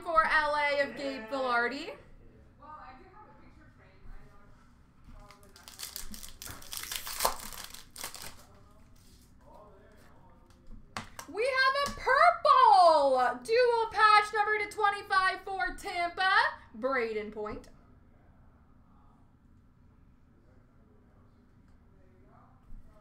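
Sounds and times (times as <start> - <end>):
cards and plastic packaging crinkling: 5.2 - 8.6.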